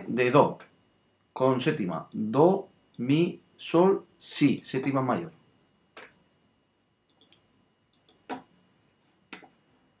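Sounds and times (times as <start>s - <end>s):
computer mouse clicks: 7.1s - 8.5s.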